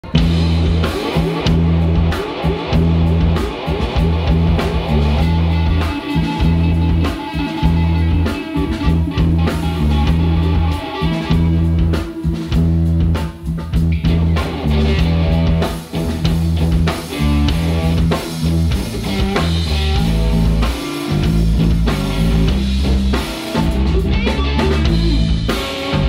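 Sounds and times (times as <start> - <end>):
drum kit: 0.0 - 26.0
electric bass: 0.0 - 26.0
electric guitar: 0.0 - 26.0.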